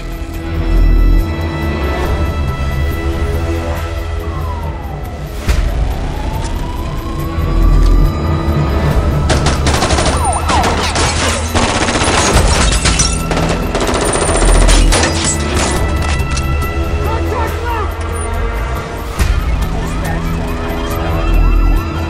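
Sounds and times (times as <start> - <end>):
action trailer music: 0.0 - 22.0
rapid automatic gunfire: 11.5 - 12.5, 13.2 - 14.8.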